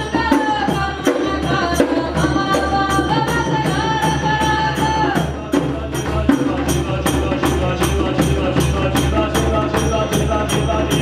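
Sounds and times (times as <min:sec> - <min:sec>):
hand drums beating: 0:00.0 - 0:11.0
jingling shaker percussion: 0:00.0 - 0:11.0.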